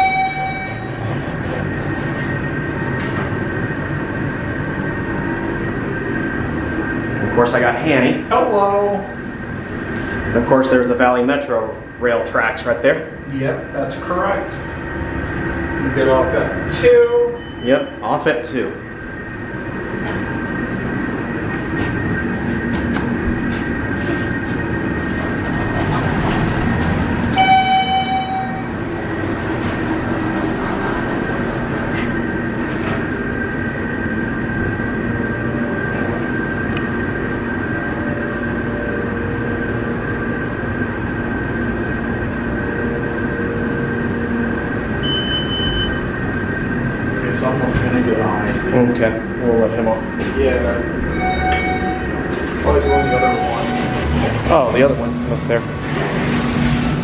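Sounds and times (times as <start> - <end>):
elevator pump motor humming: 0.0 - 57.0
high beep: 45.0 - 46.1, 51.0 - 54.0
electronic chime: 51.1 - 54.0.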